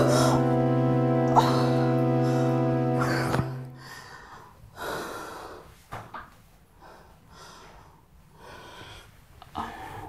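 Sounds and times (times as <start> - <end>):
background music chord: 0.0 - 4.3.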